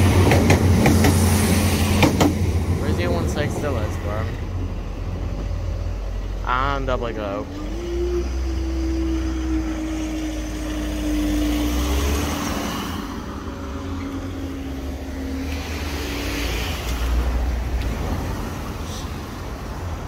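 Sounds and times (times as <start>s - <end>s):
car engines rumbling: 0.0s - 20.0s
tyres on road: 0.0s - 20.0s.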